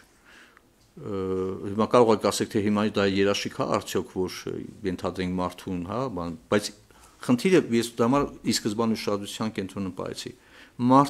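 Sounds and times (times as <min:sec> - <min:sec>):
man talking into a microphone: 0:01.0 - 0:11.0.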